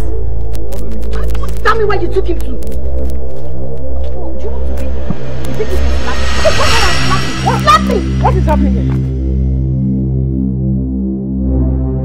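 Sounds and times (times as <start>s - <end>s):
low synthesizer drone: 2.6s - 12.0s.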